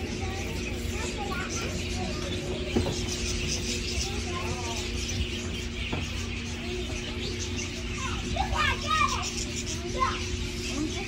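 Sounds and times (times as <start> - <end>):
young children exclaiming: 0.0 - 5.3, 6.1 - 11.0
steady background hum: 0.0 - 11.0.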